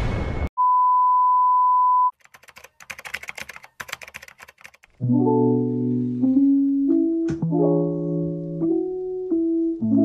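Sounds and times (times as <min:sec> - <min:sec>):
keyboard typing clicks: 0:02.2 - 0:05.0.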